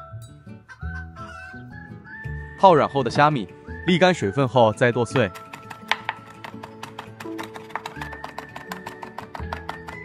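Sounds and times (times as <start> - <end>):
cleaver chopping on wooden board: 5.3 - 10.0.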